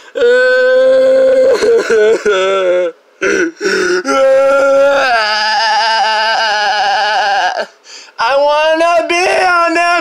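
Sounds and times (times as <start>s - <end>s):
person singing without words: 5.0s - 10.0s.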